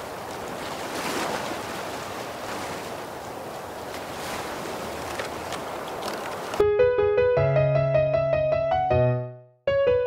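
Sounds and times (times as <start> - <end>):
ocean waves washing in: 0.0 - 7.5.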